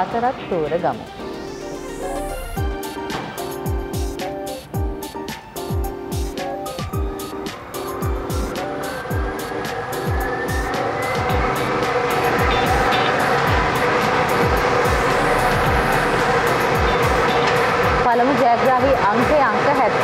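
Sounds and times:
background music with steady beat: 0.0s - 20.0s
lottery machine blower: 6.2s - 20.0s.

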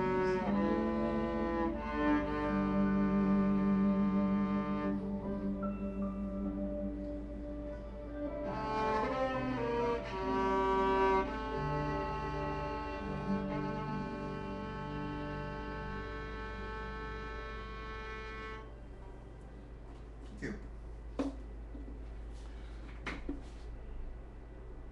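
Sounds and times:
low bowed string melody: 0.0s - 19.9s.

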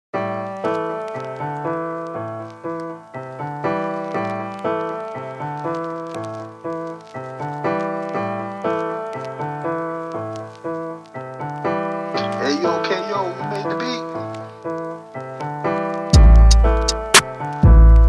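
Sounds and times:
keyboard chords over hip-hop beat: 0.2s - 18.0s.

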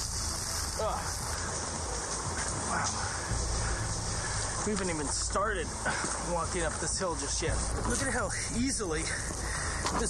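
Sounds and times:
dry brush rustling and scraping: 4.1s - 10.0s.

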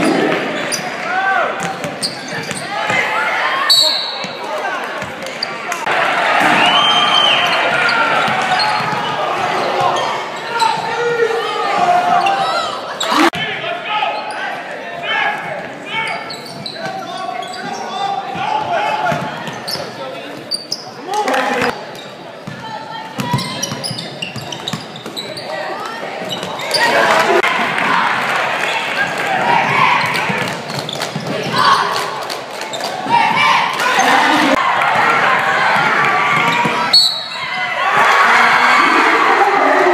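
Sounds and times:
echoing voices: 25.2s - 39.9s.

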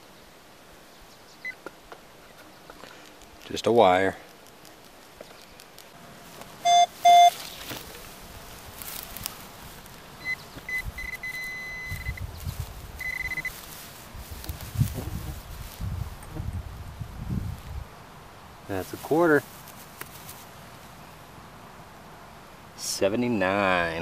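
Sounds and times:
gloved hands rustling grass: 4.3s - 21.2s
pulsing pinpointer tone: 6.6s - 7.4s, 10.2s - 12.2s, 13.0s - 13.5s
short beeps: 6.6s - 7.4s, 10.2s - 12.2s, 13.0s - 13.5s.

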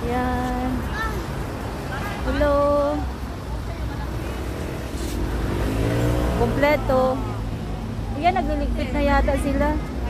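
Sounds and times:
background chatter of shoppers: 0.0s - 10.0s.

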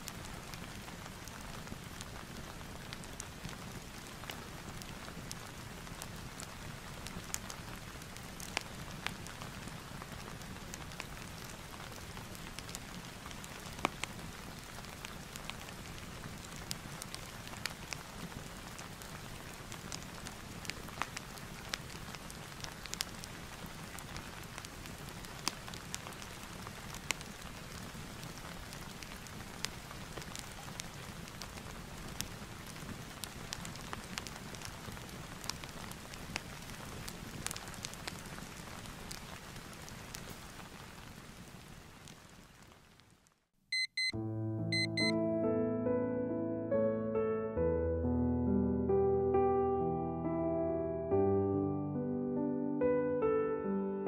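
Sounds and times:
steady rain: 0.0s - 43.5s
fireplace crackling: 0.0s - 44.1s.

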